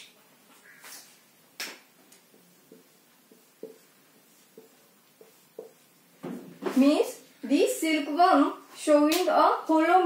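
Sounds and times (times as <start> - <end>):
marker strokes on whiteboard: 2.1 - 6.9.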